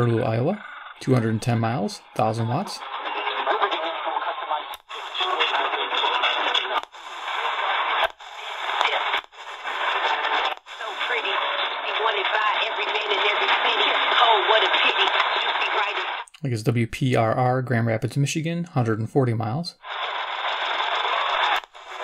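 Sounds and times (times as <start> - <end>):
radio talk from small speaker: 0.0 - 22.0.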